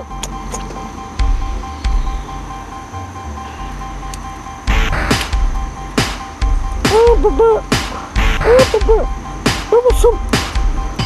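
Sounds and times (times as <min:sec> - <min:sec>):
steady high tones: 0:00.0 - 0:11.0.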